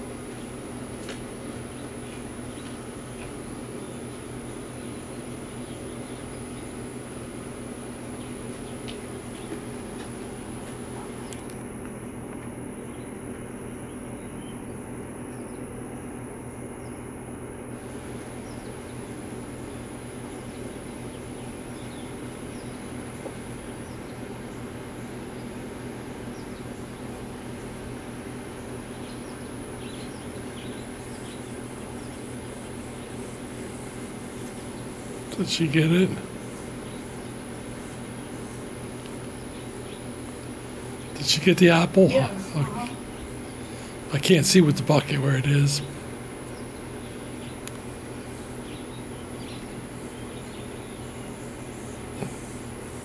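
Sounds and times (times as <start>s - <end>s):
high insect chorus: 0.0s - 53.0s
low steady hum: 0.0s - 53.0s.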